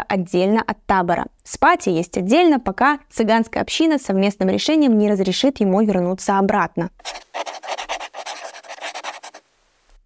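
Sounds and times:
rapid scratchy crackling: 0:07.0 - 0:09.4.

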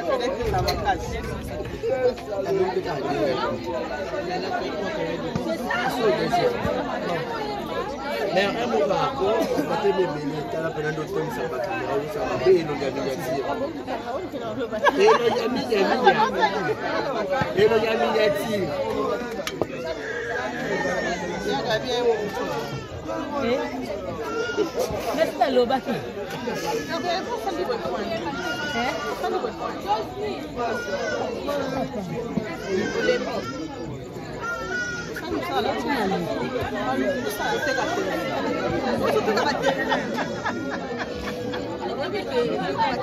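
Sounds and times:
people chattering: 0:00.0 - 0:43.0.

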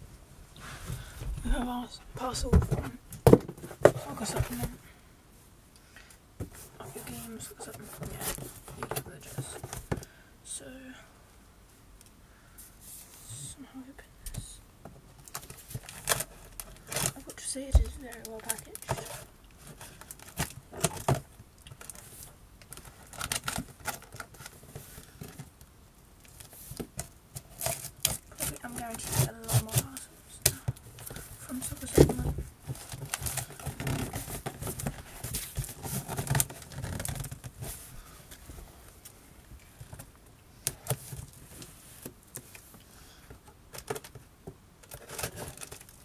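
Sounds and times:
cardboard box rustling: 0:00.8 - 0:04.8, 0:06.4 - 0:10.0, 0:15.3 - 0:25.5, 0:26.4 - 0:39.0, 0:44.9 - 0:46.0.

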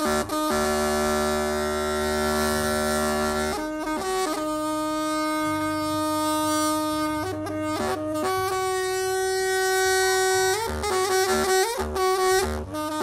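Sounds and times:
bamboo wind pipe playing: 0:00.0 - 0:13.0.

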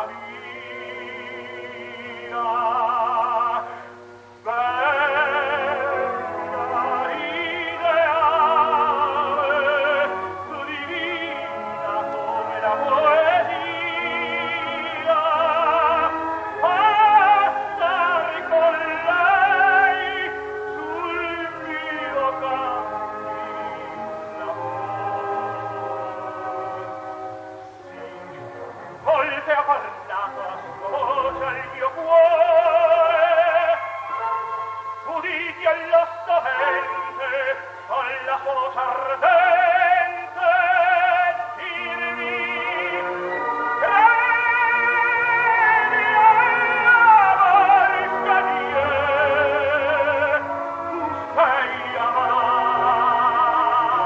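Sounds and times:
operatic tenor singing: 0:00.0 - 0:54.0
orchestra playing: 0:00.0 - 0:54.0.

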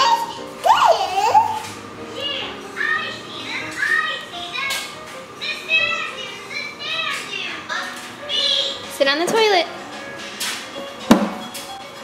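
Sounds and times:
cartoon music: 0:00.0 - 0:04.5
high-pitched children's voices: 0:00.0 - 0:08.9.

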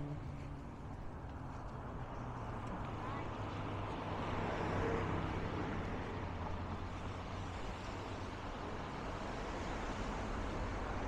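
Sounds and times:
vehicle passing: 0:00.0 - 0:08.0
road traffic: 0:00.0 - 0:11.0.

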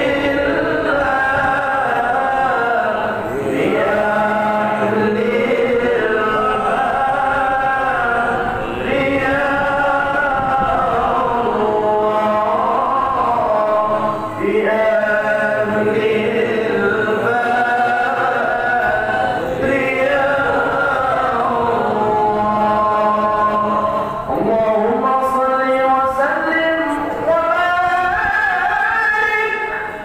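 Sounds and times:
devotional chanting: 0:00.0 - 0:30.0.

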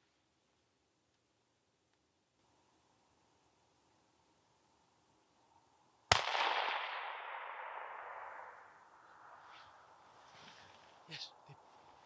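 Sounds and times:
rifle shot with echo: 0:06.1 - 0:08.8.

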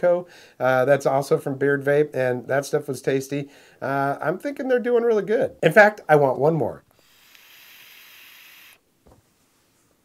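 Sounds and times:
air hissing through e-cigarette: 0:06.9 - 0:08.8.

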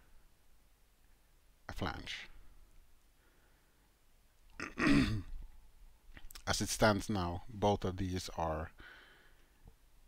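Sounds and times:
man coughing: 0:04.6 - 0:05.3.

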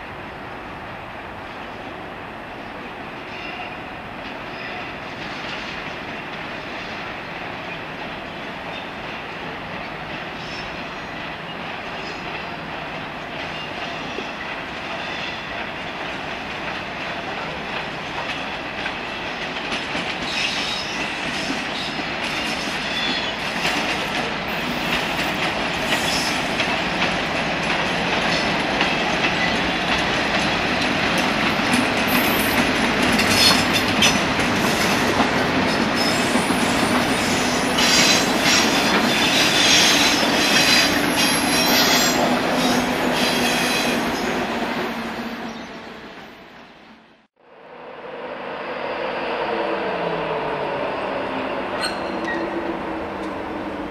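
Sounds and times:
diesel locomotive passing: 0:00.0 - 0:53.9.

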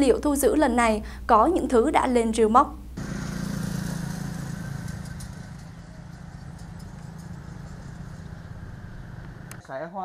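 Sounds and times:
low traffic hum: 0:00.0 - 0:09.7
motorbikes riding past: 0:03.0 - 0:09.6.

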